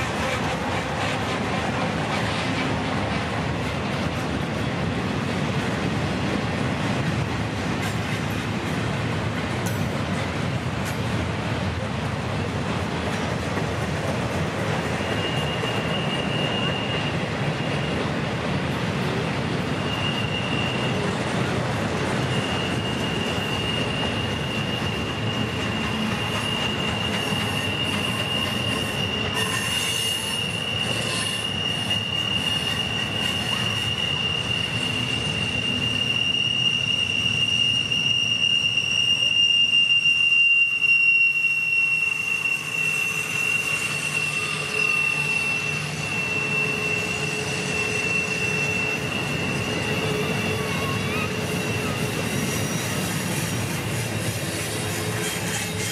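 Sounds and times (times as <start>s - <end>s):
freight train wheels rumbling: 0.0s - 55.9s
higher wheel squeal: 13.2s - 55.9s
wheel flange squeal: 14.7s - 18.2s, 19.6s - 55.9s.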